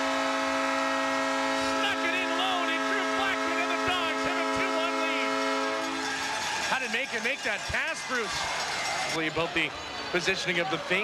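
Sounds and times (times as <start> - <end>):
goal horn blast: 0.0 - 6.4
crowd cheering and shouting: 1.7 - 11.0.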